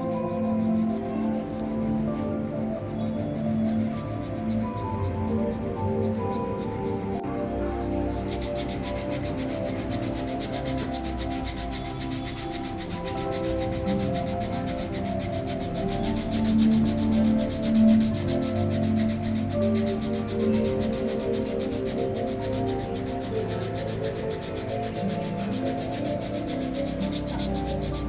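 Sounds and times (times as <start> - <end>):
foot file rasping on skin: 0.0 - 7.2, 8.2 - 28.0
soft background music: 0.0 - 28.0.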